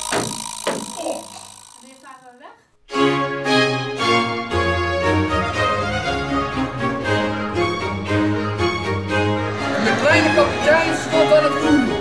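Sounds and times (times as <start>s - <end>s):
orchestral music with strings: 2.9s - 12.0s.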